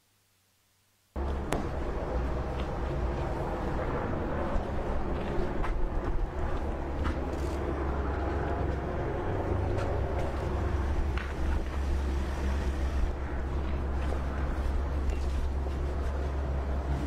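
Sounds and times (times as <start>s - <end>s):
city street noise: 1.1s - 17.0s.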